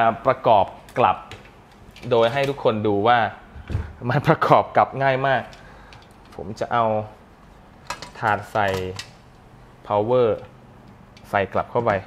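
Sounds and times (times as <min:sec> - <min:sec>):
metal tray clicking against metal frame: 0:07.9 - 0:09.2.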